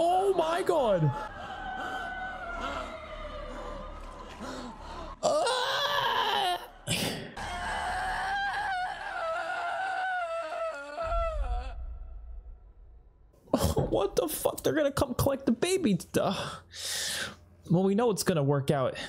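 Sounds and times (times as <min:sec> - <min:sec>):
woman screaming in pain: 0:05.2 - 0:12.1.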